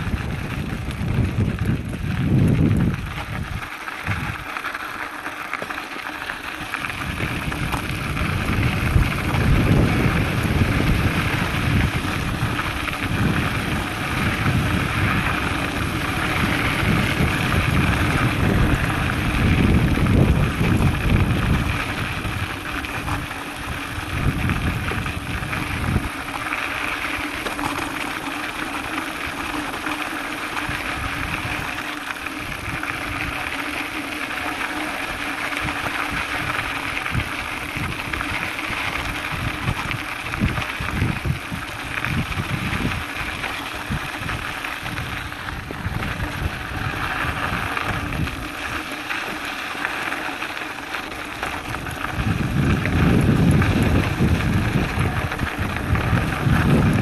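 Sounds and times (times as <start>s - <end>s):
wind buffeting microphone: 0.0s - 4.5s, 6.6s - 57.0s
bike rattling: 0.0s - 57.0s
bike tyres on loose gravel: 0.0s - 57.0s.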